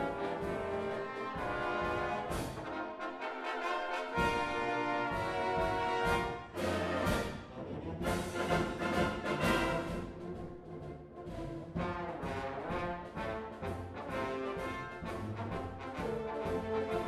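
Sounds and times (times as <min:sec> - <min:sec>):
trombones playing: 0:00.0 - 0:17.0
wind band accompanying: 0:00.0 - 0:17.0.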